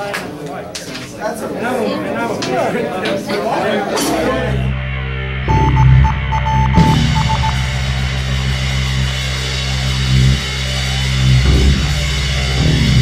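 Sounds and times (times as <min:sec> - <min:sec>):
rock band droning notes: 0:04.7 - 0:13.0
high beeps: 0:05.5 - 0:07.7.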